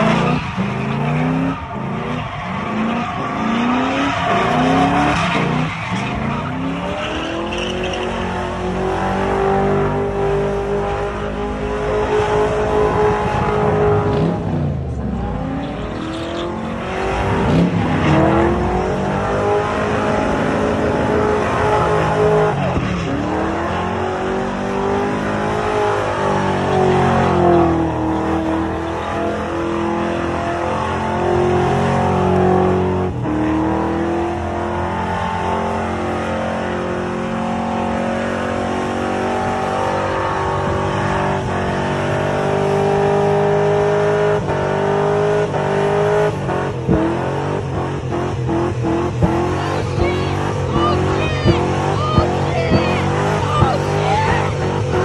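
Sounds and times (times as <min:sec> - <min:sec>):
car engine at high revs: 0:00.0 - 0:55.0
tires spinning on pavement: 0:00.0 - 0:55.0.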